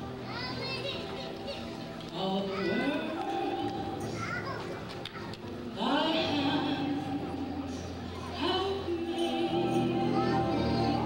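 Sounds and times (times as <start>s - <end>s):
woman singing into microphone: 5.8s - 11.0s.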